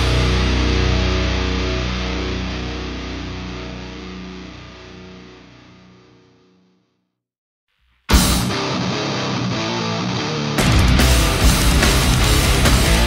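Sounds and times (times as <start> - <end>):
distorted electric guitar chord ringing: 0.0 - 6.4, 8.1 - 13.0.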